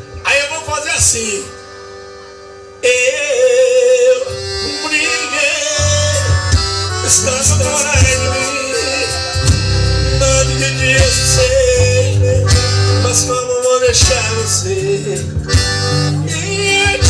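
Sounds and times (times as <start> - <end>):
accordion melody: 0.0 - 17.0
live band playing: 0.0 - 17.0.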